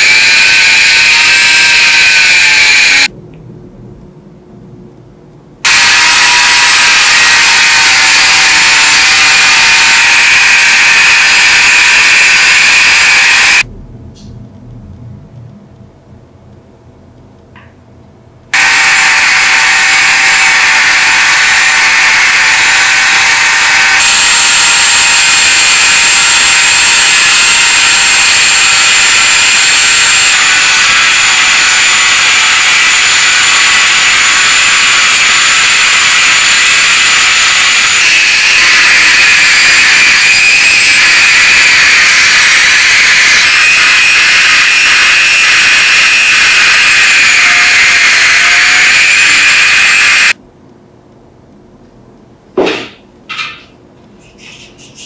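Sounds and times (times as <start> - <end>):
electric rotary tool whining: 0.0 - 3.1, 5.7 - 13.6, 18.6 - 50.4.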